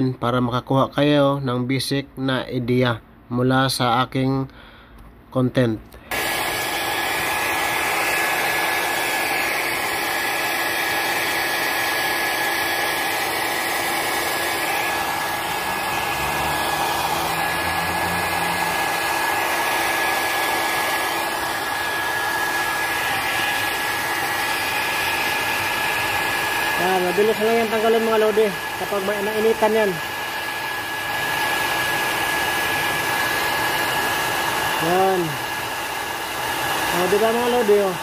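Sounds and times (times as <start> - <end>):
hair dryer running: 6.1 - 38.0.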